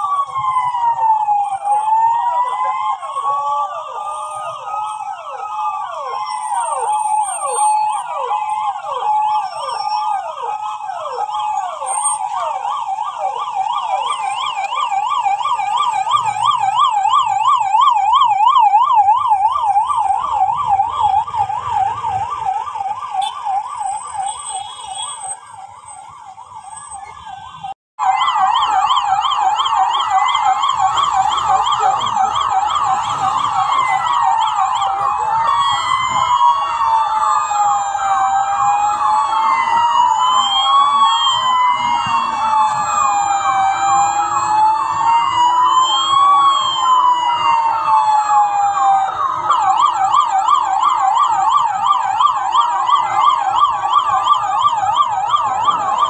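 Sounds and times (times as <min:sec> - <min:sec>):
police siren yelp: 0:00.0 - 0:56.0
siren wailing: 0:00.0 - 0:56.0.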